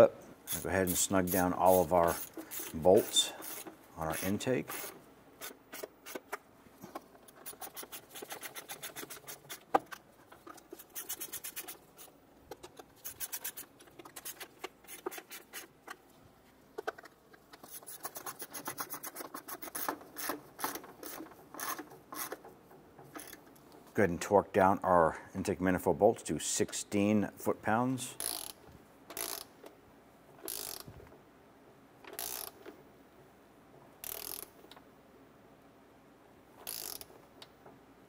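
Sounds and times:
socket ratchet clicking: 23.1 - 23.4, 28.2 - 29.5, 30.4 - 30.9, 32.1 - 32.6, 34.0 - 34.6, 36.6 - 37.1.

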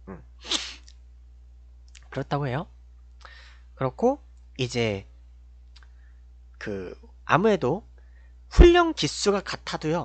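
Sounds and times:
man murmuring: 0.0 - 0.6
low electrical hum: 0.0 - 10.0
hissy breath: 0.4 - 0.9, 3.2 - 3.7.

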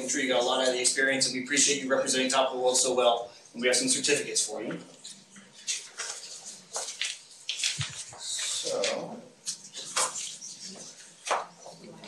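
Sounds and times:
paper rustling and crinkling: 5.6 - 11.1.

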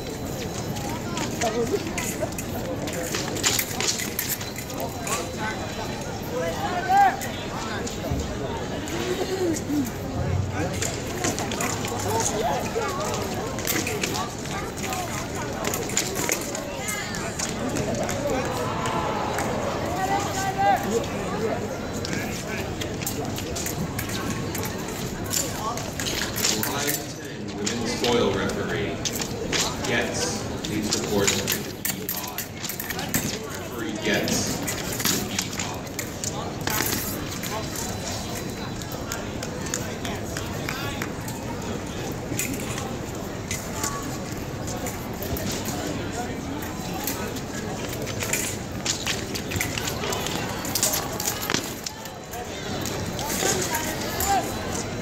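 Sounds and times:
distant voices: 0.0 - 55.0
fencing footwork and stamps: 42.3 - 54.8.

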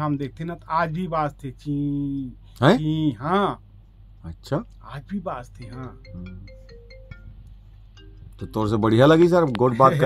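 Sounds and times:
electronic tune of short pure notes: 5.6 - 10.0.

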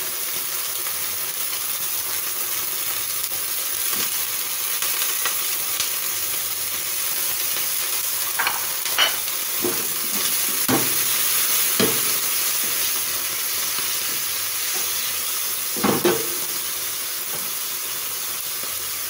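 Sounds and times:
meat sizzling in a frying pan: 0.0 - 19.0.

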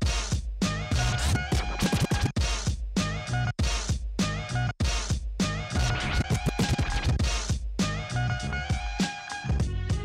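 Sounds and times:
vinyl record scratching: 0.0 - 2.7, 4.8 - 7.6
hip-hop track: 0.0 - 10.0.

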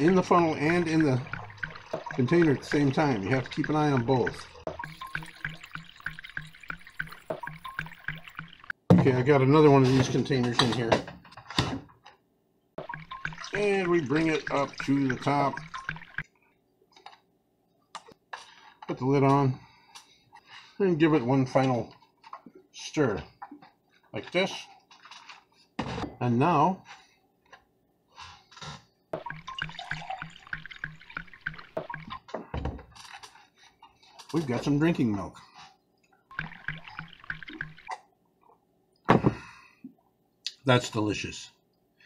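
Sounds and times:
milk sloshing in plastic jug: 0.0 - 8.8.

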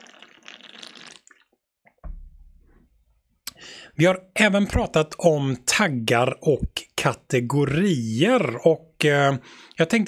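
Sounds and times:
person breathing: 3.5 - 4.0, 9.4 - 9.8
person speaking: 3.5 - 10.0.

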